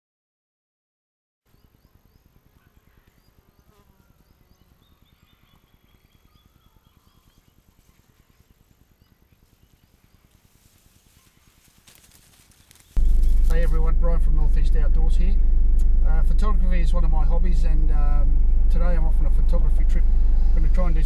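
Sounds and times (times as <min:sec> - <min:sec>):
faint crackling: 0:10.3 - 0:21.0
short high trill: 0:13.0 - 0:21.0.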